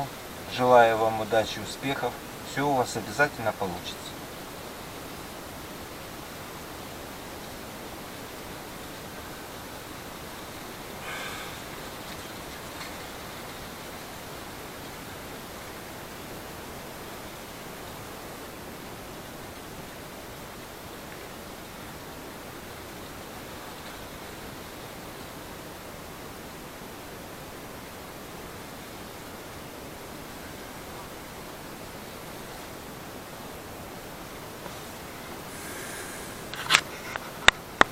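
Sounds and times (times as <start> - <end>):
steady background hiss: 0.0 - 37.9.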